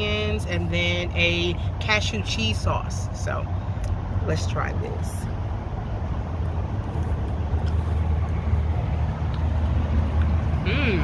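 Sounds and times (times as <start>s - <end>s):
road traffic and machinery rumble: 0.0s - 11.0s.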